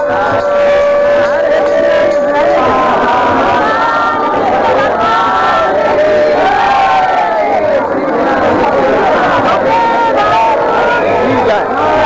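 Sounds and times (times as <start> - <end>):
conch shells blown: 0.0 - 4.9
crowd voices: 0.0 - 12.0.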